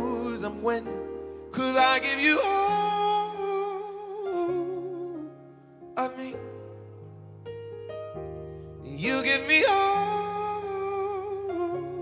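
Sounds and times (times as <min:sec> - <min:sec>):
sustained piano chords: 0:00.0 - 0:12.0.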